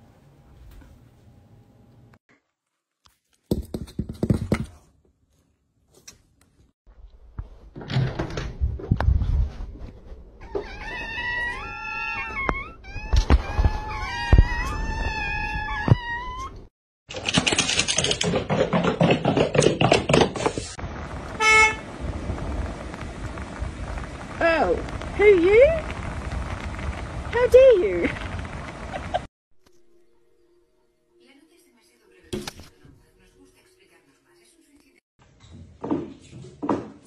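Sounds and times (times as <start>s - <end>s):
cats meowing: 10.4s - 16.7s
knocks and thumps: 17.2s - 20.7s.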